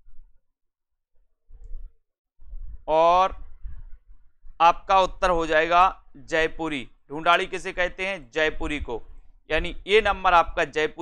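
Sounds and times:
faint low bumps: 1.5s - 10.8s
man speaking: 2.9s - 3.4s, 4.6s - 11.0s.

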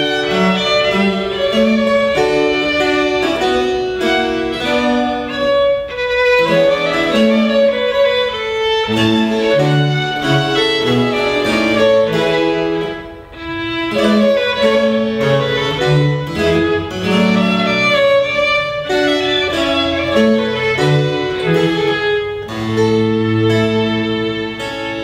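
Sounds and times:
cello bass line: 0.0s - 25.0s
harpsichord: 0.0s - 25.0s
violin melody: 0.0s - 25.0s.

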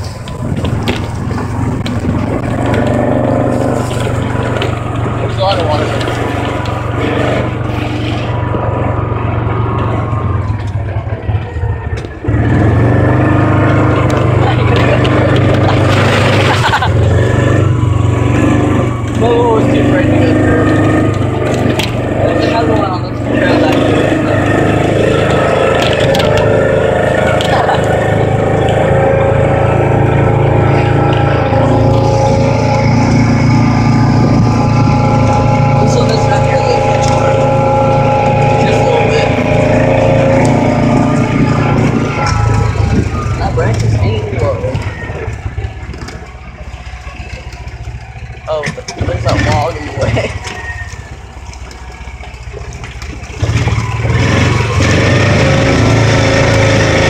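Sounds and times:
vehicle engine running: 0.0s - 57.0s.

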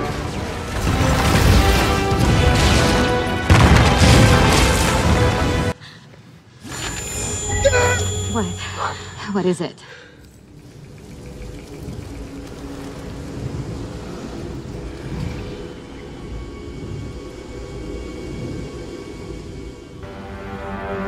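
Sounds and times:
tense ominous film score: 0.0s - 21.0s.

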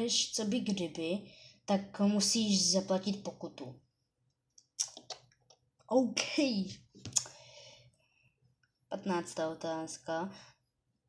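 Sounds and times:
boy speaking: 0.0s - 3.8s, 5.9s - 6.9s, 8.9s - 10.3s.

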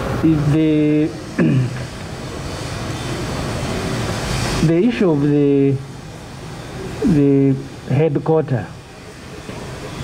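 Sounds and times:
background hiss and rumble: 0.0s - 10.0s.

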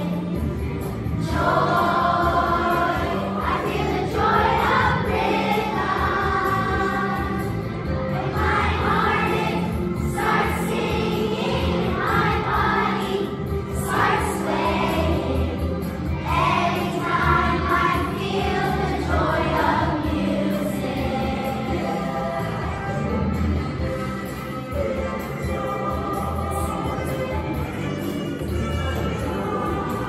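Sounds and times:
children's choir singing: 0.0s - 23.1s, 24.8s - 30.0s.

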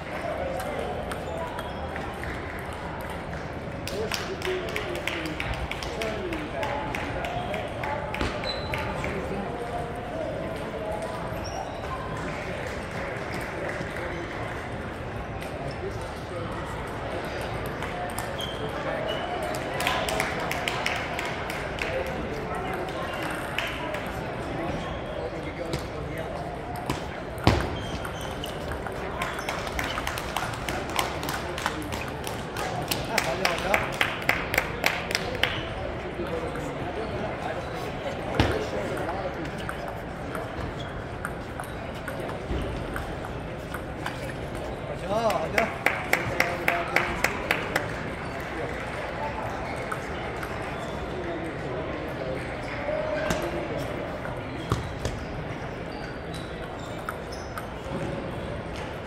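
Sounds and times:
crowd chatter in a hall: 0.0s - 59.0s.

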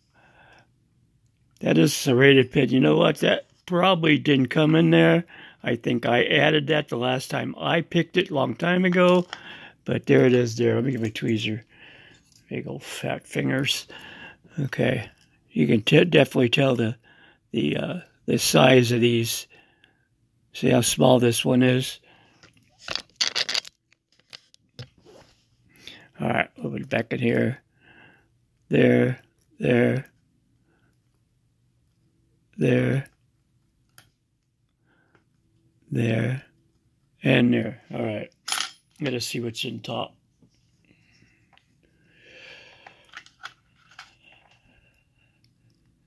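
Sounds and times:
breath close to microphone: 5.3s - 5.6s, 9.4s - 9.8s, 13.9s - 14.5s, 17.0s - 17.4s, 27.7s - 28.3s, 40.9s - 43.2s.

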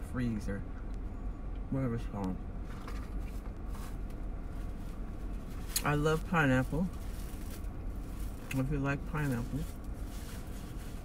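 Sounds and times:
car cabin rumble: 0.0s - 11.0s
light rustling: 2.6s - 11.0s.

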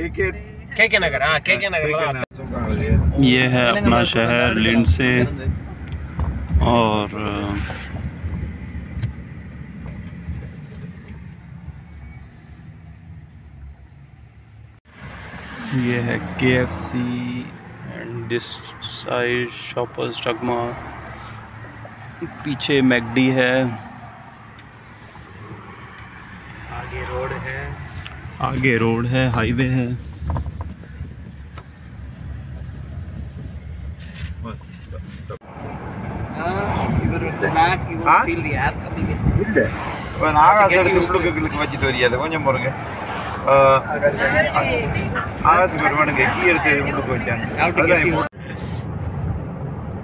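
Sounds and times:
car engine and tyre rumble: 0.0s - 50.0s.

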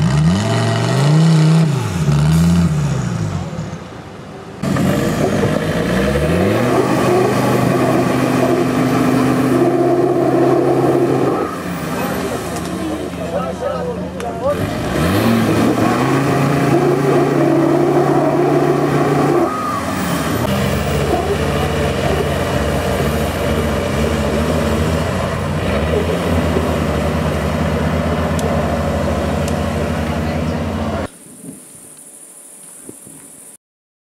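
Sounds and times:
engine revving under load: 0.0s - 3.7s, 4.6s - 31.1s.

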